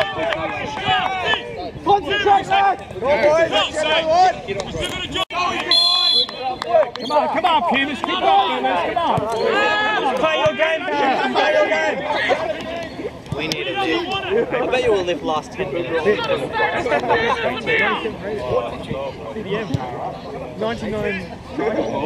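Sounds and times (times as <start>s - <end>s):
people shouting and chattering: 0.0s - 22.0s
referee's whistle blast: 5.6s - 7.2s.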